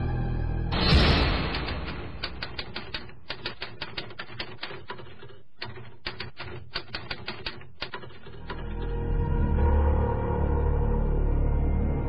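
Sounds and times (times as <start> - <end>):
typewriter key clicks: 1.4 - 8.8.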